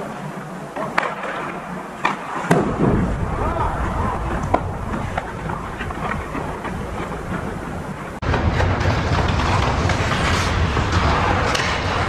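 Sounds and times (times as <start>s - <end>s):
skates scraping on ice: 0.0s - 12.0s
hockey sticks and puck clicking: 0.8s - 2.6s, 4.3s - 7.6s, 8.3s - 12.0s
steady low rumble: 2.7s - 12.0s.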